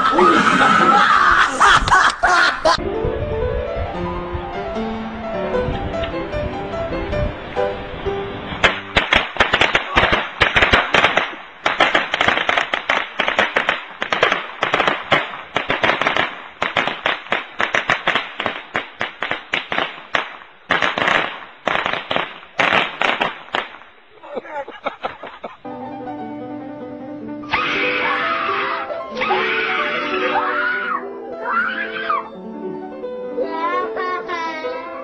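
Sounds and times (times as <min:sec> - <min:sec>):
firecrackers cracking: 0:08.5 - 0:24.3.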